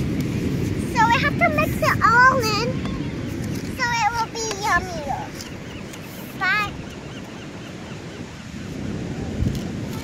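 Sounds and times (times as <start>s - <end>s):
ocean surf washing on beach: 0.0s - 10.0s
wind on microphone: 0.0s - 10.0s.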